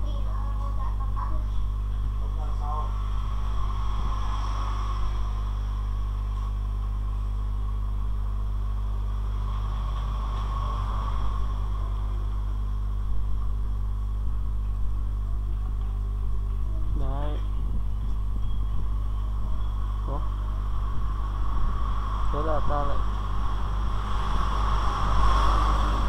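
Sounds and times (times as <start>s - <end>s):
low electrical mains hum: 0.0s - 26.0s.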